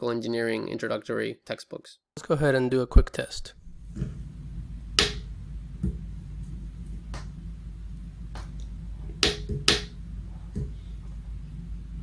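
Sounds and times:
steady low hum: 3.4 - 12.0.

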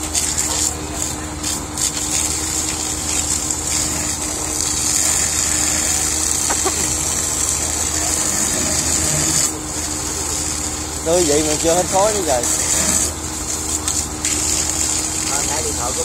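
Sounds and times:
engine hum: 0.0 - 16.0
water hissing from fire hoses: 0.0 - 16.0.

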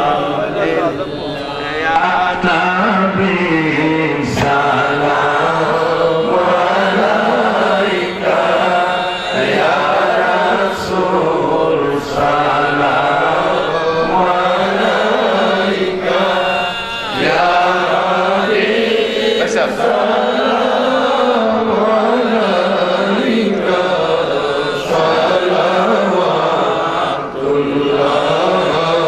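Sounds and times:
man chanting over loudspeaker: 0.0 - 29.0.

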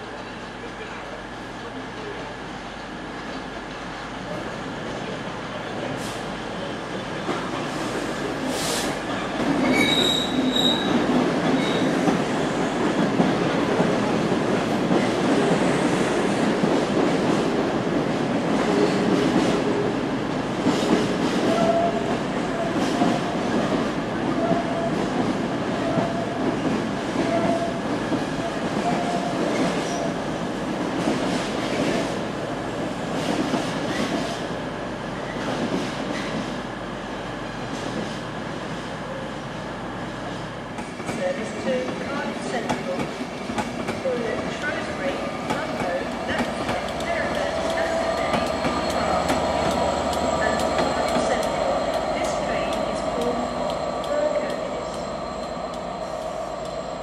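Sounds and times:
train wheels squealing: 9.6 - 11.0, 11.6 - 12.0, 47.8 - 52.1.

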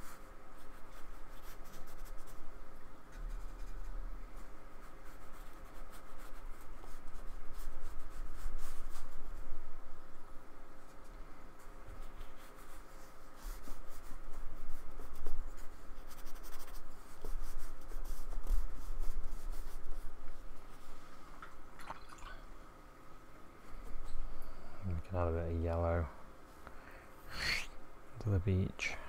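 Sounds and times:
paintbrush brushing on card: 0.0 - 2.4, 3.1 - 9.4, 10.8 - 21.2.

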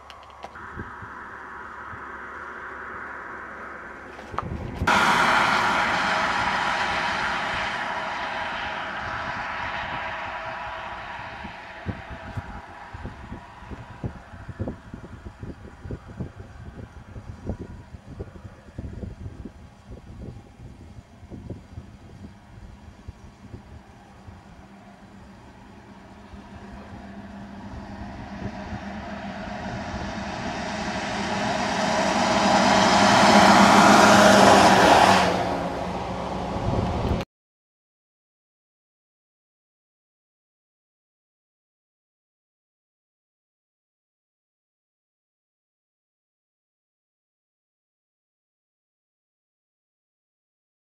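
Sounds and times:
car driving away: 0.0 - 37.2
vehicle passing close by: 0.0 - 37.2.

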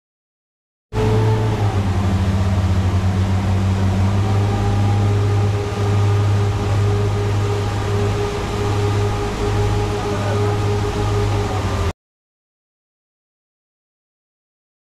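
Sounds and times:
motorboat engine running: 0.9 - 11.9
rush of wake water: 1.0 - 11.9
wind: 1.0 - 11.9.

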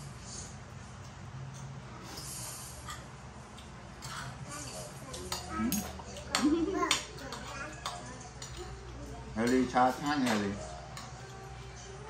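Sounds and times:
cutlery clinking on plates: 4.0 - 8.8, 9.4 - 11.4.

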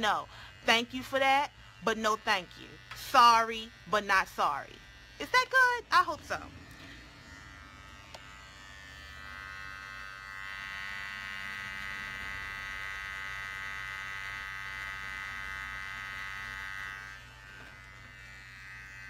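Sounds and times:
electric hair clippers buzzing: 0.0 - 19.0.

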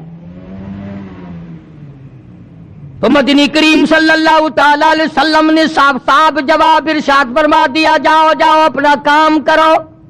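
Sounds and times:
vehicle engine humming: 0.0 - 10.0.

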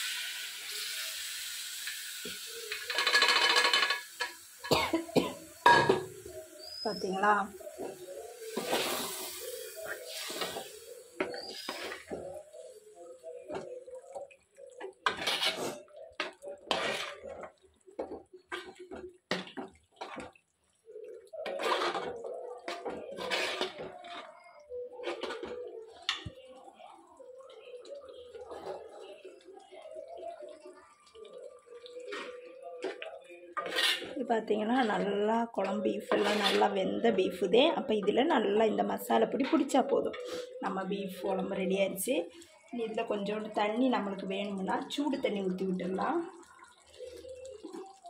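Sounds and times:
spoon scraping and clinking pot: 2.7 - 4.4, 15.0 - 18.9, 21.4 - 24.3, 33.6 - 34.2, 36.0 - 36.8
spoon stirring thick curry: 7.5 - 41.4, 44.5 - 48.0.

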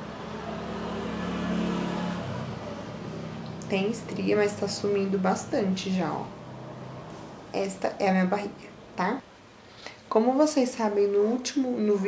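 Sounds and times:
vehicle engine passing by: 0.0 - 7.8.

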